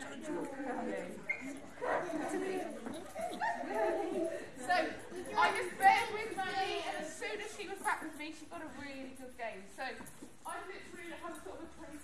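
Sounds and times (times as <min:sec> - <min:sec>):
woman's voice: 0:04.6 - 0:12.0.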